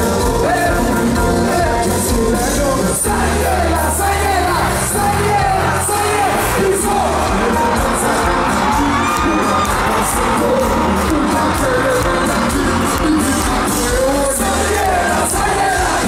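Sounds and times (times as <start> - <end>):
lead singer: 0.0 - 16.0
live band playing: 0.0 - 16.0
crowd shouting: 3.0 - 16.0.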